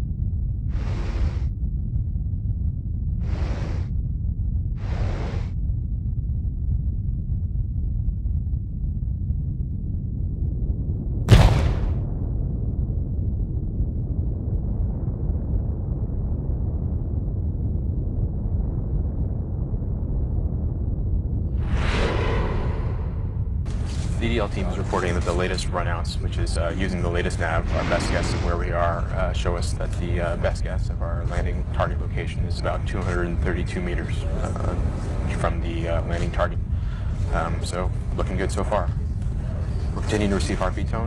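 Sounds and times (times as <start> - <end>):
low rumble: 0.0 - 41.0.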